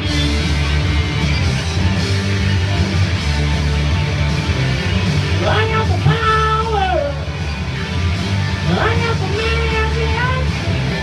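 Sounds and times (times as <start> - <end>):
electric guitar rock song: 0.0 - 11.0.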